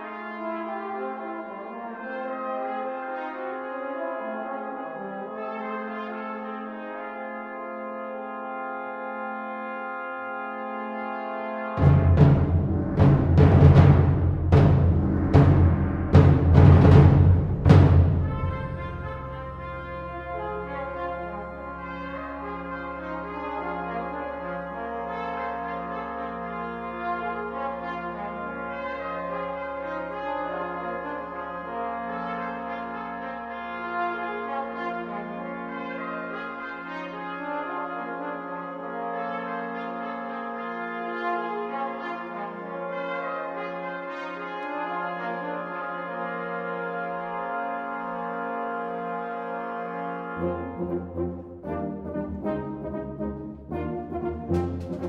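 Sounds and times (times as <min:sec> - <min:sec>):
concert band brass music: 0:00.0 - 0:55.0.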